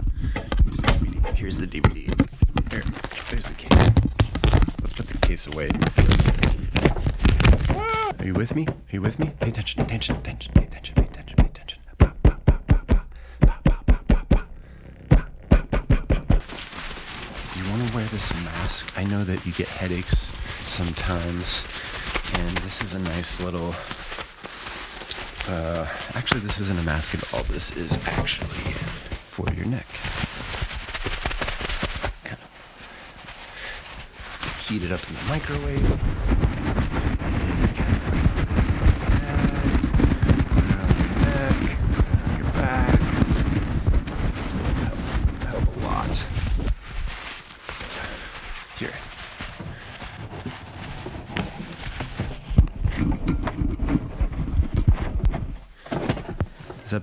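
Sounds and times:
cloth wrap crackly rustling: 0.6s - 8.6s, 16.4s - 57.0s.

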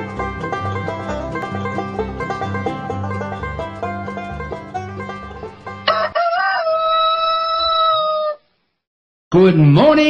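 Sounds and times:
rooster crowing: 5.8s - 8.5s.

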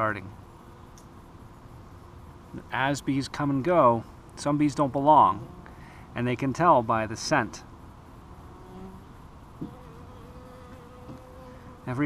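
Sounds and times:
small tick: 0.9s - 1.1s
bee buzzing in flight: 5.2s - 5.8s, 8.2s - 12.0s.

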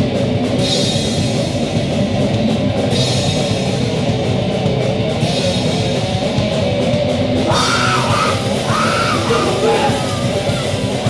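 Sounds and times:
punk rock band playing: 0.0s - 11.0s
yelled lead vocals: 7.2s - 11.0s.

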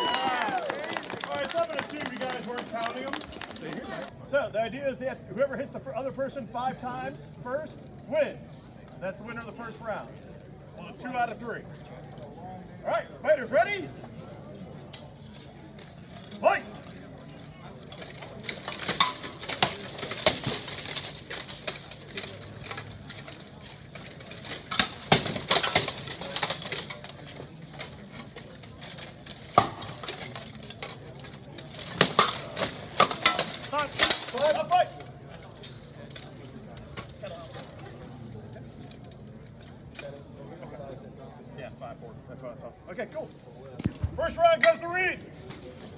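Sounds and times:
weapons clanking against plate armour: 14.8s - 40.2s.

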